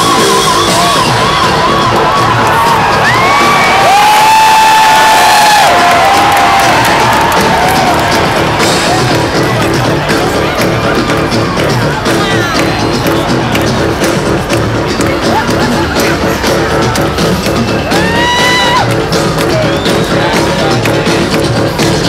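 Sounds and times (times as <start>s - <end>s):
crowd cheering: 0.0s - 22.0s
rock band playing live: 0.0s - 22.0s.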